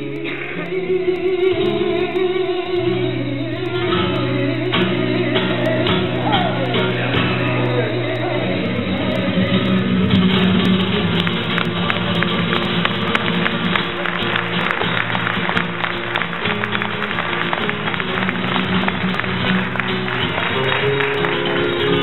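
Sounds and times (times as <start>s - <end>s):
person singing: 0.0s - 12.4s, 20.4s - 22.0s
flamenco guitar: 0.0s - 22.0s.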